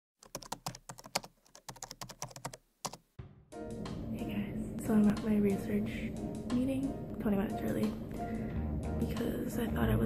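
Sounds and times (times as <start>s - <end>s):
steady background sound: 0.3s - 10.0s.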